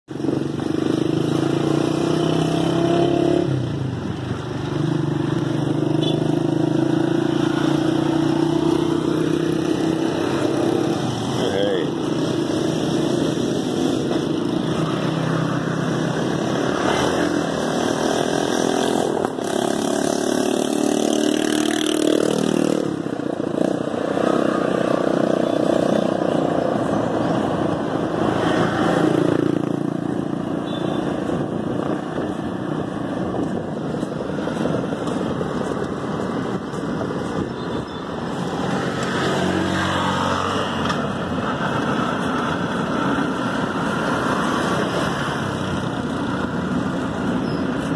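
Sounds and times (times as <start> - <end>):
road noise: 0.0 - 47.9
motorcycle engine revving: 0.1 - 47.9.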